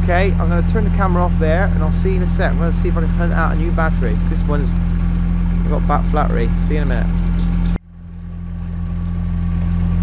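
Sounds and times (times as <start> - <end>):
boat engine droning: 0.0 - 10.0.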